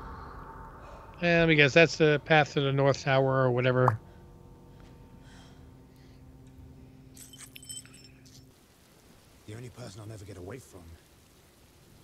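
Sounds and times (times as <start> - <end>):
low steady hum: 0.0 - 12.0
small metal pieces jingling: 7.2 - 8.5.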